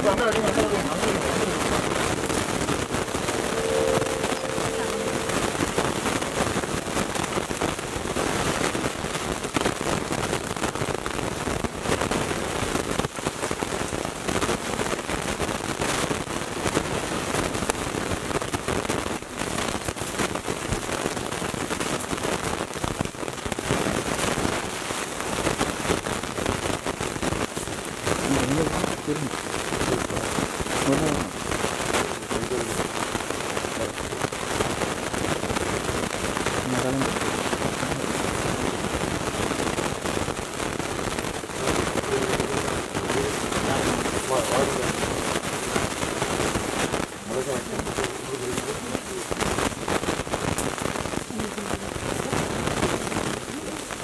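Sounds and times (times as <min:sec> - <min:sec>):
heavy rain falling: 0:00.0 - 0:54.0
brief held tone: 0:03.3 - 0:06.0.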